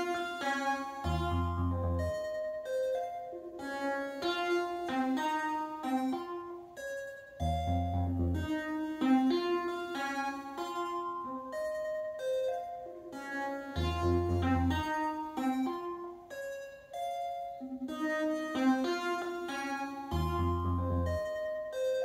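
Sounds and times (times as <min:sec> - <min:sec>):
synthesizer melody of bright notes: 0:00.0 - 0:22.0
low synth bass note: 0:01.1 - 0:02.2, 0:07.4 - 0:08.6, 0:13.8 - 0:14.9, 0:20.1 - 0:21.2.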